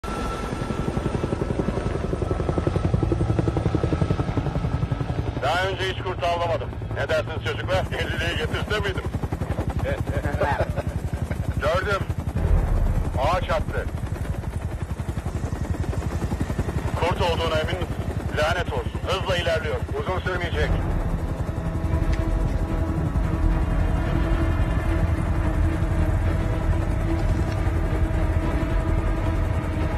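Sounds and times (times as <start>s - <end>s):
helicopter high whine: 0.0s - 29.9s
helicopter rotor beating: 0.0s - 29.9s.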